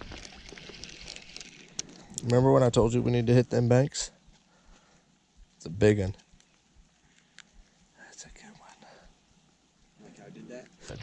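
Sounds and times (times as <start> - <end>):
soft rustle: 0.0 - 11.0.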